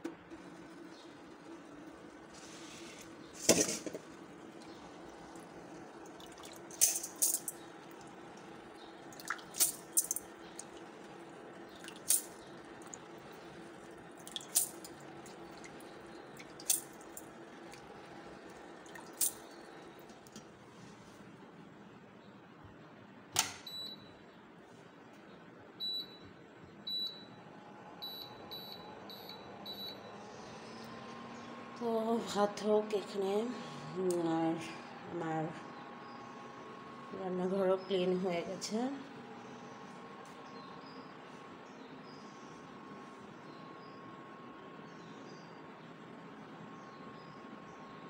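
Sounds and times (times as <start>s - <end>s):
water splashing and dripping: 9.1s - 9.8s, 14.2s - 14.7s
sharp click: 23.4s - 23.6s
cooktop touch panel beeps: 23.6s - 24.2s, 25.8s - 27.4s, 28.0s - 30.2s.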